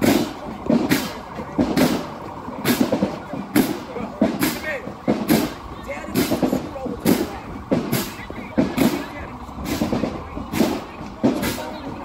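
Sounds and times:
marching band drum cadence: 0.0 - 12.0
voices shouting: 0.0 - 12.0.

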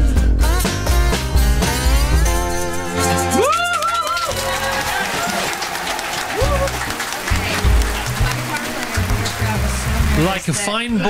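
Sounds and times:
live band playing: 0.0 - 10.7
applause and cheering: 3.0 - 11.0.

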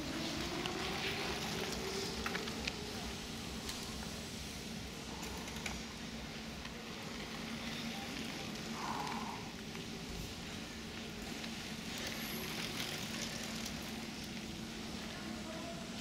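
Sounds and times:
bike tyres rolling on dirt: 0.0 - 15.8
steady low hum: 0.0 - 16.0
faint clicks: 5.1 - 6.8.

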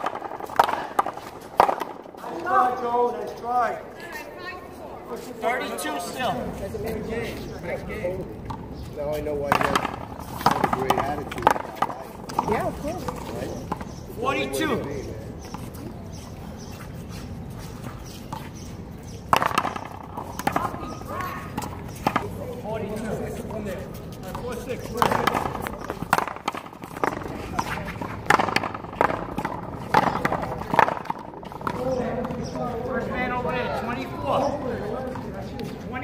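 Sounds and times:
players' voices: 0.0 - 36.0.

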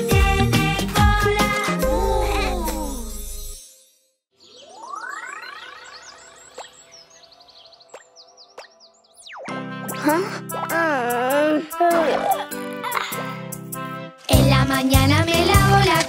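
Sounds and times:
music: 0.0 - 4.2, 9.2 - 16.0
cartoon song: 1.1 - 3.3, 9.5 - 13.4.

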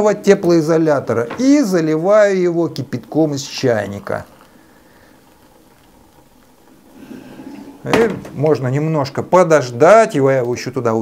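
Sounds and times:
water pouring into a mug: 2.9 - 7.9.

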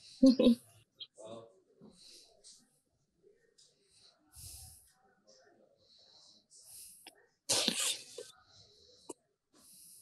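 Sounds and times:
loud sneeze: 7.5 - 8.2.

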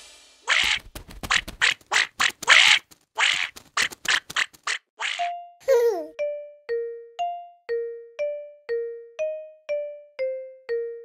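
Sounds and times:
cartoon duck quacking: 0.5 - 5.4.

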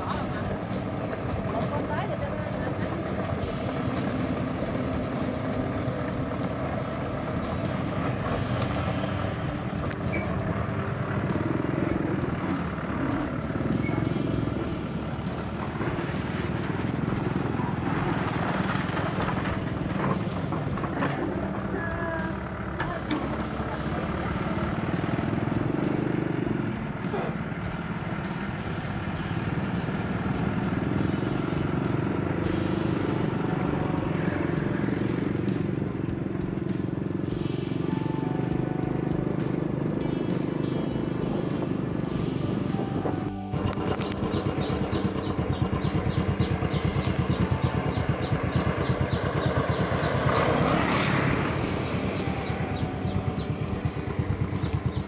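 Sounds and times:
excavator diesel engine running: 0.0 - 55.0.

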